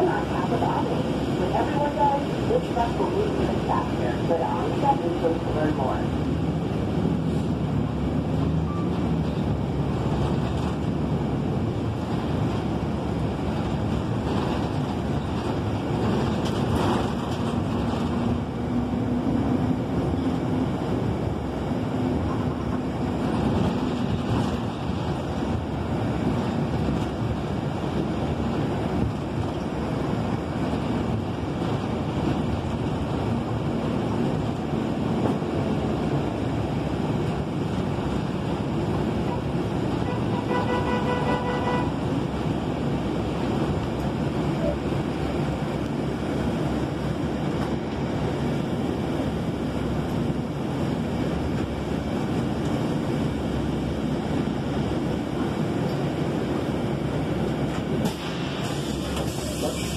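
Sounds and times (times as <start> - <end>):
bus engine and road noise: 0.0 - 59.9.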